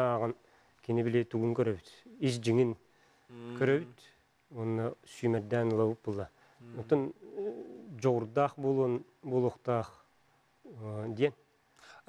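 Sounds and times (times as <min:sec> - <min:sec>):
man talking: 0:00.0 - 0:10.0, 0:10.7 - 0:11.4.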